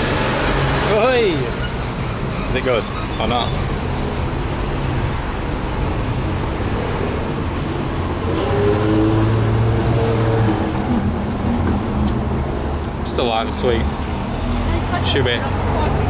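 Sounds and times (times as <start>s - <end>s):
car engine passing: 0.0s - 16.0s
cars passing: 0.0s - 16.0s.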